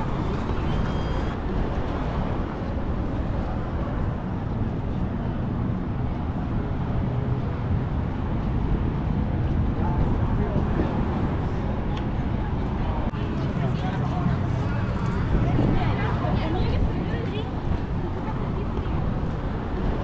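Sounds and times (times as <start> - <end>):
faint indistinct voices: 0.0 - 20.0.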